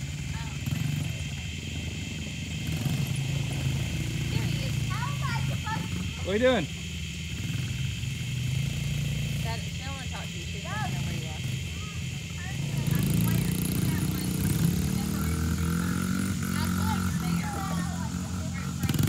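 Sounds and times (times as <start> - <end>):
dirt bike engines running: 0.0 - 19.0.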